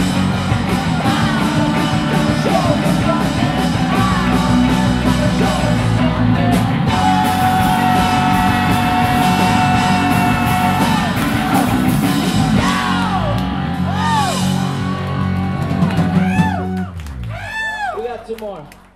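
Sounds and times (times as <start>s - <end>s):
rock band playing live: 0.0s - 17.3s.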